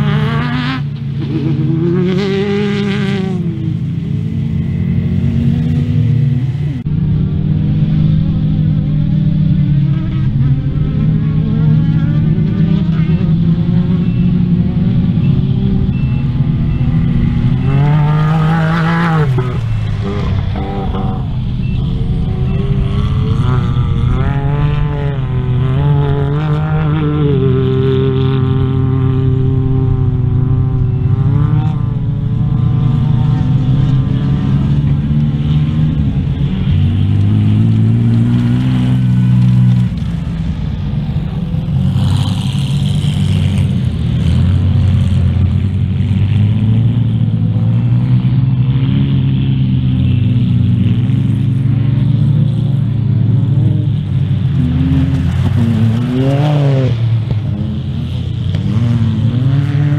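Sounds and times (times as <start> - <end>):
race car engines revving: 0.0 - 59.9.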